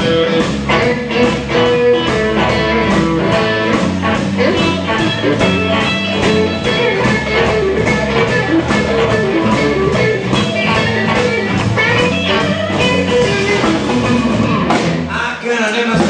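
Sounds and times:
drum kit steady beat: 0.0s - 15.2s
bass: 0.0s - 16.0s
guitar: 0.0s - 16.0s.

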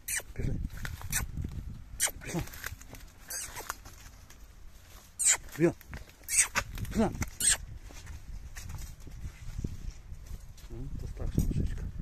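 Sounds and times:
man calling to horses: 2.0s - 2.6s, 5.2s - 7.6s.

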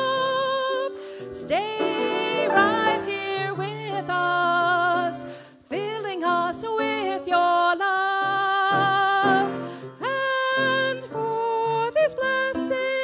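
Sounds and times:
woman singing into a microphone: 0.0s - 13.0s
instrumental accompaniment: 0.2s - 10.0s.

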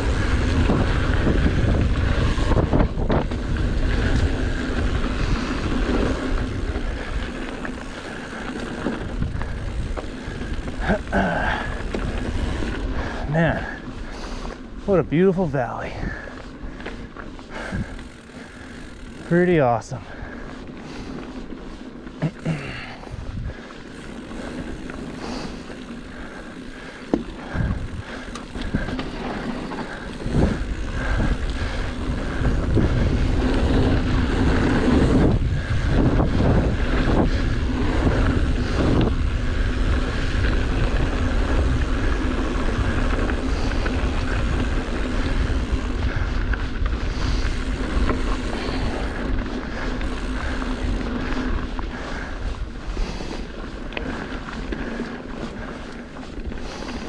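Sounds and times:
wind buffeting microphone: 0.0s - 22.0s, 22.7s - 57.0s
bike tyres on dirt: 0.0s - 57.0s.

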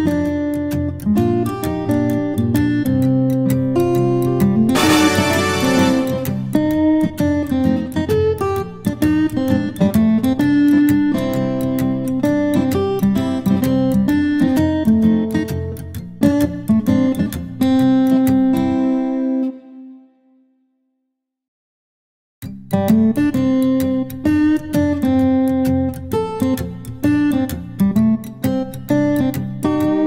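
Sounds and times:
acoustic guitar melody: 0.9s - 8.0s.

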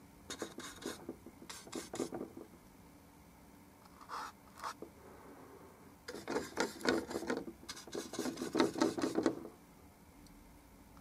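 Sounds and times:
paintbrush scrubbing thick paint: 0.3s - 2.2s, 6.1s - 9.3s.

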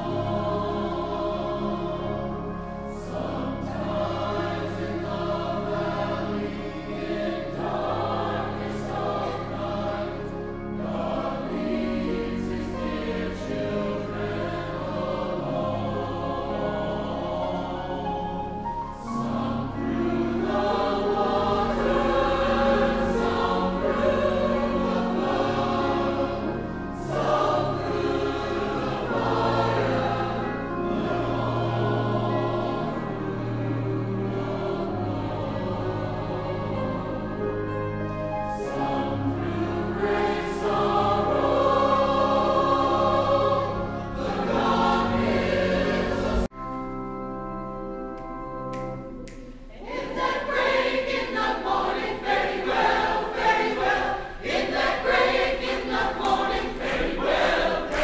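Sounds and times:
choir singing: 0.0s - 58.0s.

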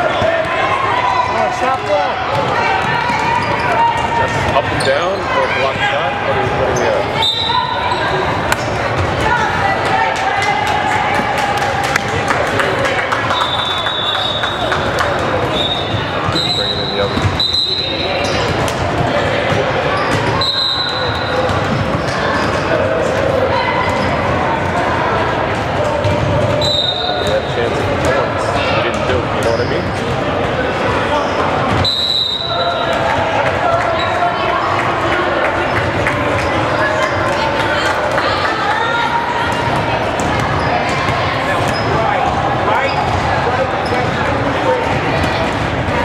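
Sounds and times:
murmur of spectators: 0.0s - 46.0s
sneaker squeaks: 2.3s - 5.8s, 6.6s - 9.0s, 13.4s - 22.8s, 26.0s - 27.6s, 28.9s - 33.0s, 40.1s - 45.7s
ball bouncing on court: 17.0s - 17.5s, 39.4s - 46.0s.

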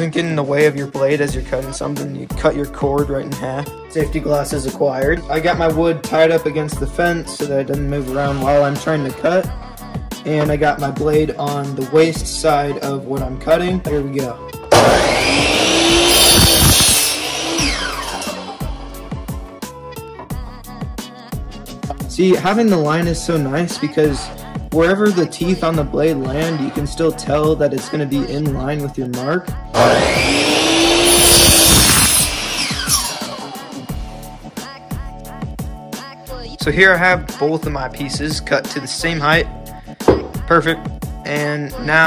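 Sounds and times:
background music with steady beat: 0.0s - 42.0s
miter saw cutting wood: 14.7s - 19.4s, 29.8s - 34.3s
saw motor winding down: 14.7s - 19.4s, 29.8s - 34.4s.

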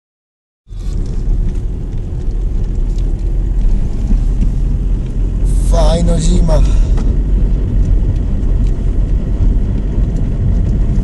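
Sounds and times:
car engine and tyres rumbling: 0.7s - 11.0s
person speaking: 5.4s - 7.1s.

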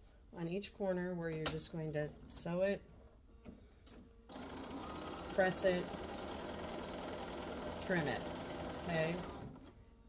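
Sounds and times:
electric sewing machine running: 4.3s - 9.7s.

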